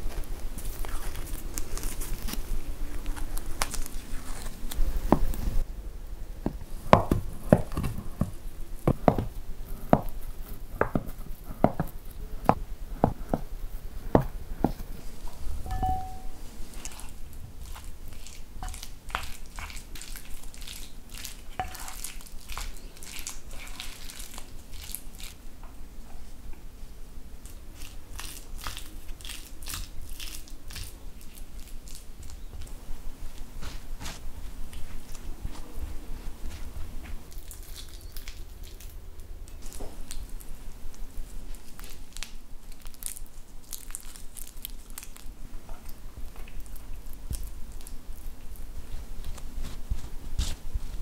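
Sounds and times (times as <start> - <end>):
wet crunchy stirring in bowl: 6.7 - 25.4, 27.4 - 32.8.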